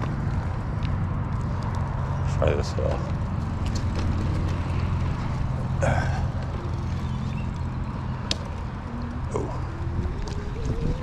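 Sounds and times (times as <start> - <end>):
wind on microphone: 8.7 - 11.0.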